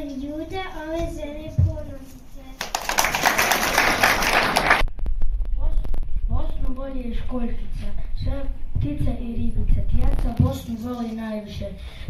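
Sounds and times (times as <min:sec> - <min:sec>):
audience applause: 0:02.6 - 0:04.8.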